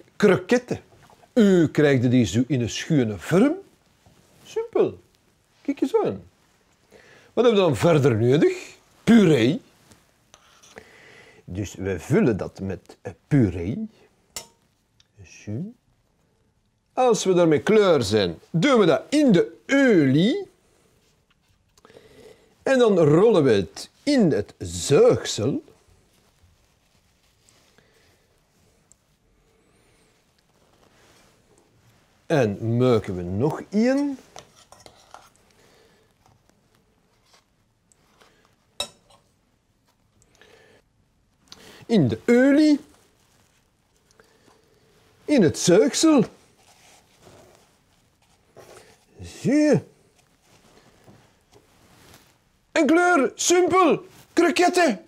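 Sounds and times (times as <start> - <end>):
faint handling and rustling: 0.0 - 55.0
metal spoon clinking saucepan: 14.4 - 14.6, 38.8 - 39.3.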